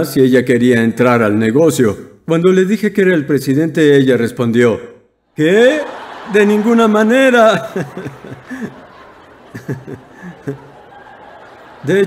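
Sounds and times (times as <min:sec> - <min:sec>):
audience chuckling and laughing: 0:05.4 - 0:12.0.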